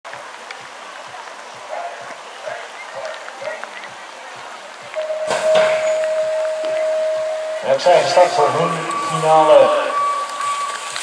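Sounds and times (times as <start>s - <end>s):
faint voices: 0.1s - 11.0s
electronic start tone: 5.0s - 11.0s
start gate dropping with clatter: 5.2s - 6.3s.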